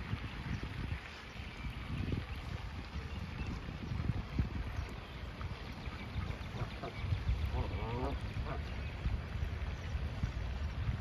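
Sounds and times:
pond water wash: 0.0s - 11.0s
wind buffeting microphone: 0.0s - 11.0s.

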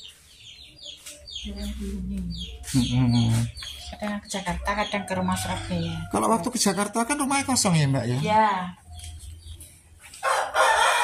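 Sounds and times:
rooster crowing: 5.0s - 6.8s, 10.2s - 11.0s.

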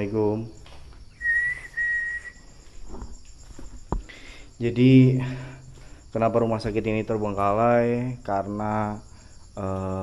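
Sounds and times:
crickets chirping: 0.0s - 10.0s
high whistle-like tone: 1.1s - 2.6s.

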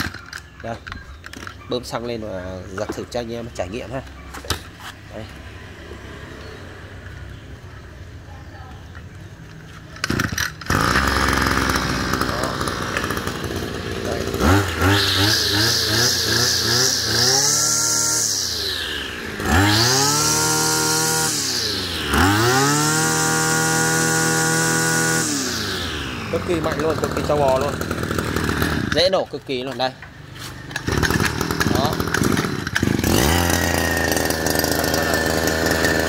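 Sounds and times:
two-stroke brush cutter engine revving: 0.0s - 4.1s, 10.0s - 36.0s.

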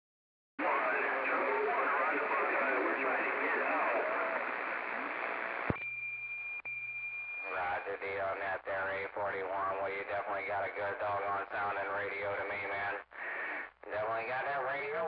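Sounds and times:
voice through radio static: 0.6s - 5.7s, 7.5s - 15.0s
radio click: 2.9s - 5.9s.

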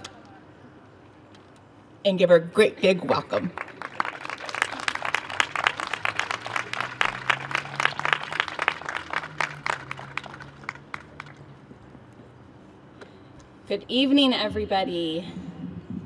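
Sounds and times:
audience applauding: 3.6s - 11.4s.

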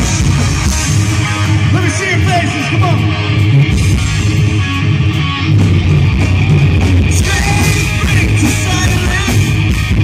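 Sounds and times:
bass guitar: 0.0s - 10.0s
drums: 0.0s - 10.0s
electric guitar: 0.0s - 10.0s.

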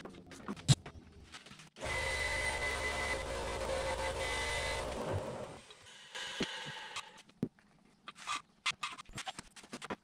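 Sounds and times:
electric tool motor running: 1.8s - 5.6s.

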